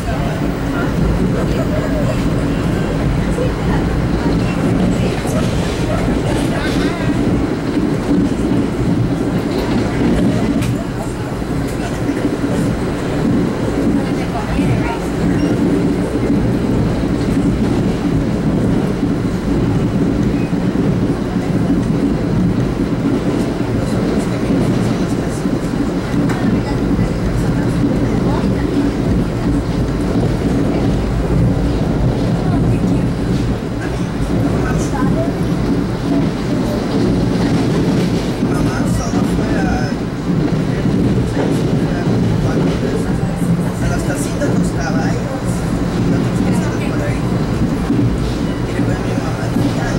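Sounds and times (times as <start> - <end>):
train wheels rolling on rails: 0.0 - 49.9.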